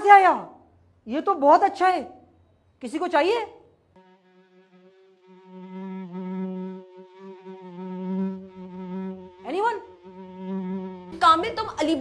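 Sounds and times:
fly buzzing: 0:03.9 - 0:12.0.

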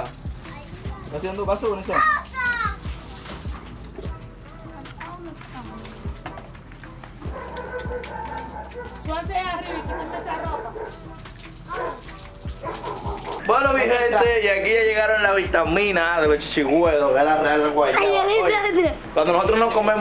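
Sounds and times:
music: 0:00.0 - 0:20.0.

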